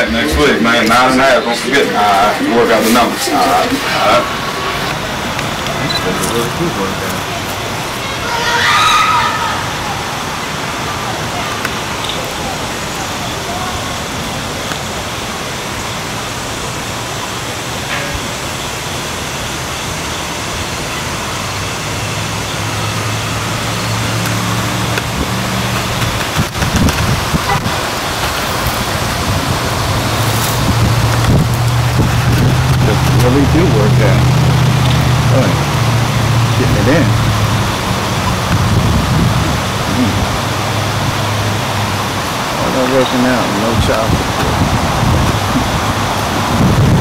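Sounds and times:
steady outdoor hiss: 0:00.0 - 0:47.0
low engine hum: 0:21.2 - 0:47.0.

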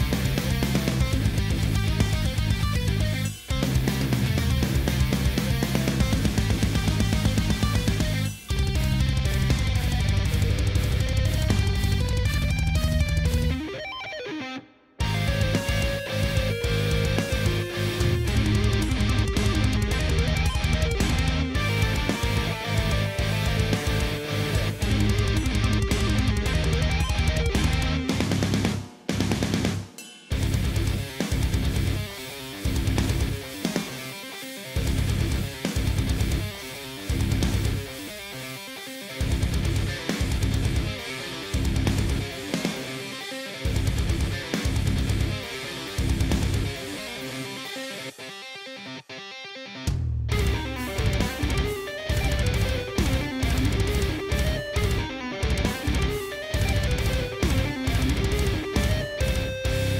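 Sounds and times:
distorted electric guitar riffs: 0:00.0 - 0:29.7, 0:30.3 - 0:59.9
heavy metal song: 0:00.0 - 0:59.9.

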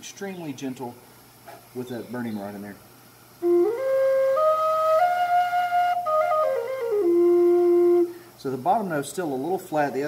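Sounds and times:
flute playing held notes: 0:03.4 - 0:08.2.

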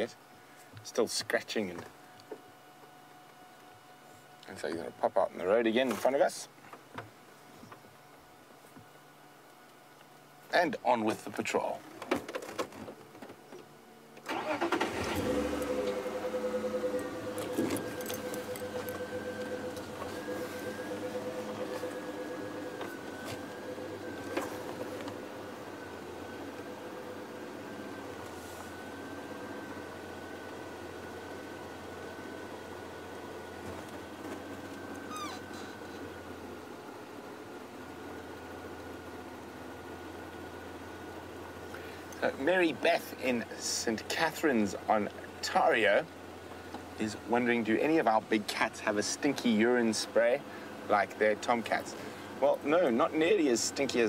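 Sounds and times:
thin engine whine: 0:14.2 - 0:36.3
vehicle engine starting and running: 0:14.2 - 0:36.7.

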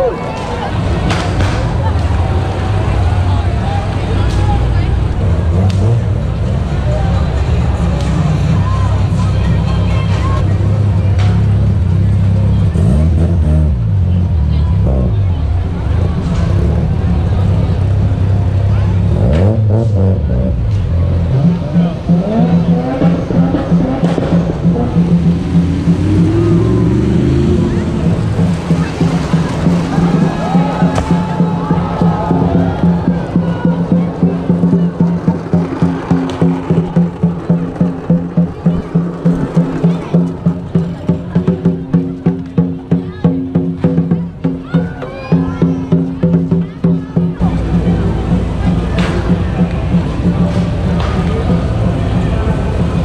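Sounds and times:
crowd chatter: 0:00.0 - 0:53.0
sports car engines rumbling: 0:00.0 - 0:53.0
fast parade music beat: 0:21.4 - 0:53.0.

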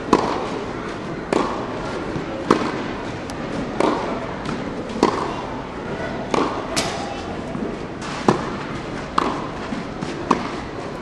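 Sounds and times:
tennis ball hitting racket: 0:00.0 - 0:05.5, 0:06.2 - 0:11.0
background murmur of hall: 0:00.0 - 0:11.0.

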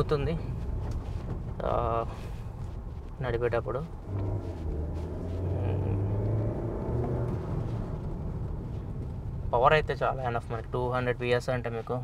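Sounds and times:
car engine and road noise hum: 0:00.0 - 0:12.0.

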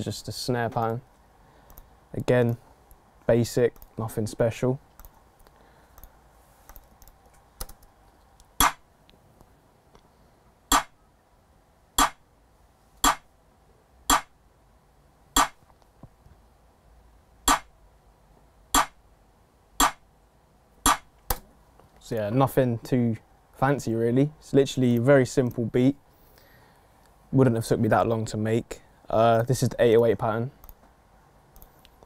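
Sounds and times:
sharp snare hits: 0:08.6 - 0:08.8, 0:10.7 - 0:11.0, 0:12.0 - 0:12.2, 0:13.0 - 0:13.3, 0:14.1 - 0:14.4, 0:15.4 - 0:15.6, 0:17.5 - 0:17.7, 0:18.8 - 0:19.0, 0:19.8 - 0:20.0, 0:20.9 - 0:21.4.

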